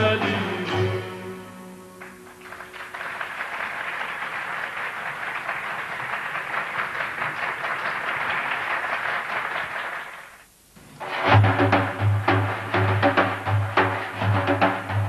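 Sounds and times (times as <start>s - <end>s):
audience applauding: 2.0s - 10.5s.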